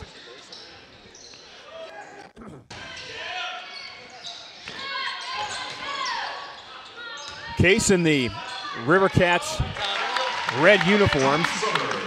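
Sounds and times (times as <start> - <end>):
echoing voices: 5.3 - 12.0.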